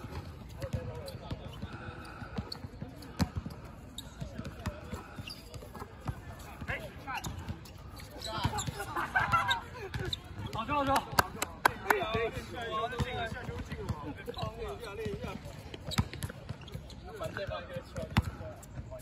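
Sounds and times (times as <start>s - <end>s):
players' voices: 0.0s - 19.0s.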